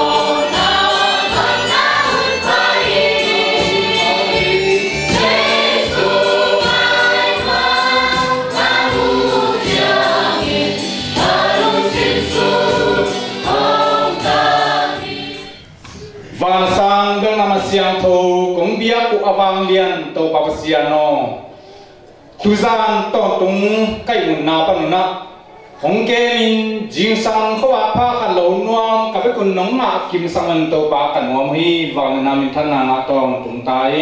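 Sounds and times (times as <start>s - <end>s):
congregation singing a hymn: 0.0s - 15.8s.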